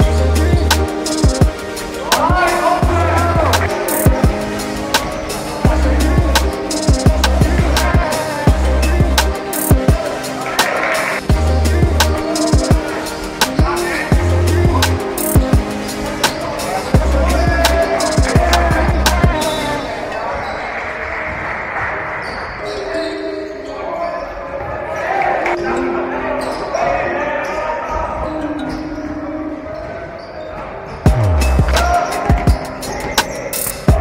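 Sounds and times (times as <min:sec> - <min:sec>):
music with heavy bass beat: 0:00.0 - 0:04.7, 0:05.6 - 0:12.8, 0:13.4 - 0:15.8, 0:17.0 - 0:19.5, 0:31.1 - 0:32.8, 0:33.5 - 0:34.0
players' voices echoing: 0:00.0 - 0:34.0.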